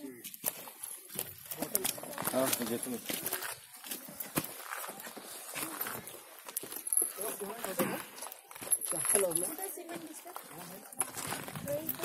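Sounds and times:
footsteps on stone steps: 0.0 - 12.0
people talking: 8.9 - 12.0.

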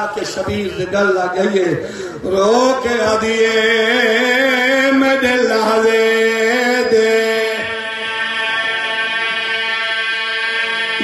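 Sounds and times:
man chanting over loudspeaker: 0.0 - 11.0.

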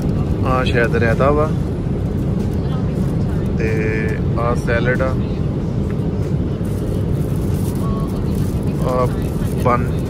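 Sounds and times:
airliner cabin low rumble: 0.0 - 10.0.

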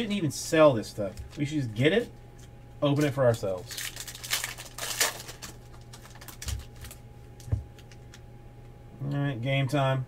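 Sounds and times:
foil wrapper crinkling: 2.9 - 8.2.

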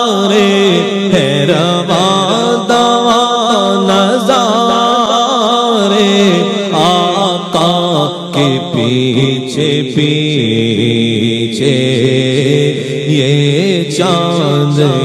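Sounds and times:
man singing into a microphone: 0.0 - 15.0.

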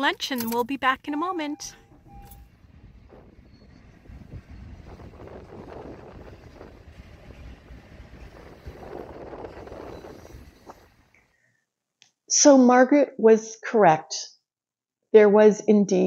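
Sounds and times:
train wheels rumbling on rails: 0.0 - 11.4.

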